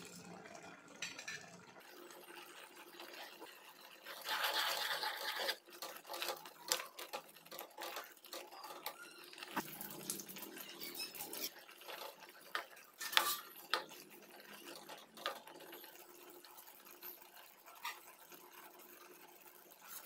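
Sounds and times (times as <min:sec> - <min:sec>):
ladle scraping pot: 0:02.8 - 0:19.0.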